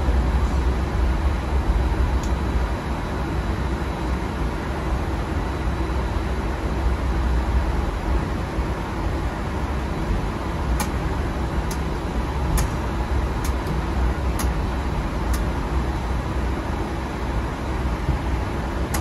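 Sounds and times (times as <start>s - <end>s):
aircraft cockpit low rumble: 0.0s - 19.0s
switches clicking: 14.4s - 14.6s.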